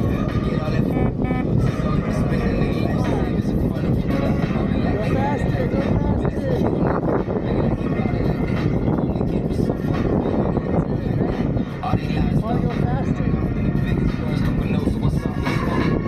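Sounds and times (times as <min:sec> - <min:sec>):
rumbling wind and road noise: 0:00.0 - 0:16.0
wind buffeting microphone: 0:00.0 - 0:16.0.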